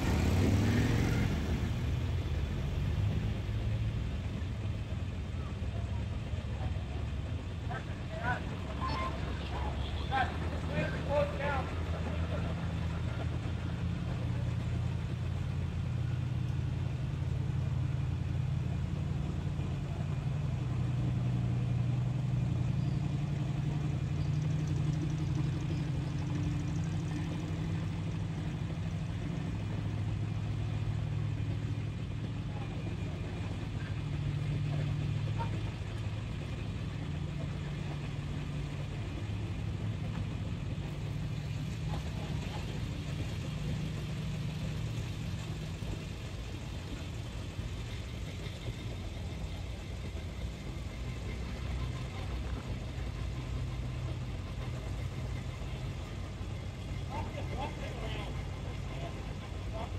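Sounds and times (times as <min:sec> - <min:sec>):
slow vehicle engines humming: 0:00.0 - 0:59.9.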